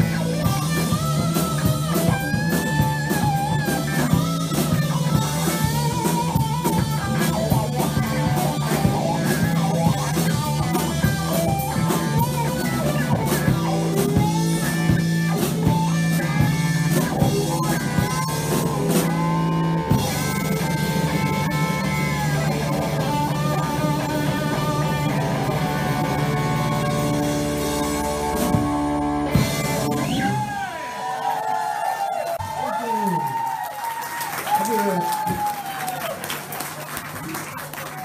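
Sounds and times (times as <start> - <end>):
drum kit: 0.0 - 31.5
electric guitar lines: 0.0 - 31.8
bass guitar: 0.0 - 33.6
audience clapping: 30.7 - 38.0.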